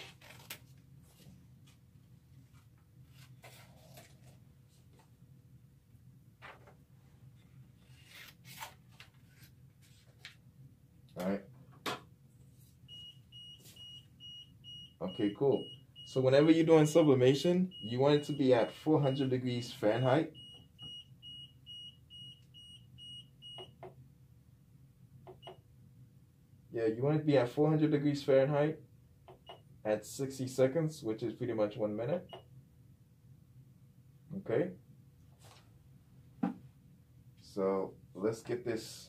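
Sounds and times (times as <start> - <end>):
paper rustling and crinkling: 2.5 - 4.8
heat press high beeps: 12.9 - 23.8.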